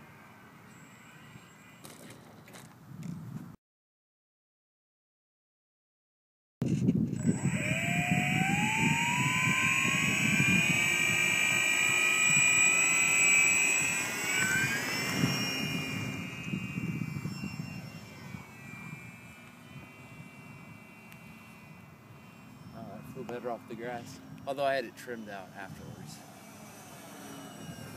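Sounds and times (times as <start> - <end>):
model plane motor whining: 0.2 - 2.7, 6.7 - 27.9.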